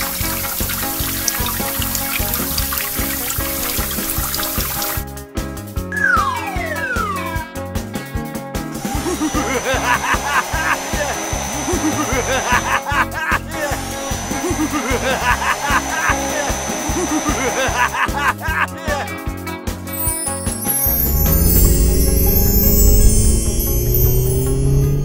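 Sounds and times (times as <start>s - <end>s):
upbeat background music: 0.0s - 25.0s
high steady air-blower whine: 8.8s - 12.9s, 13.7s - 17.9s, 20.6s - 25.0s.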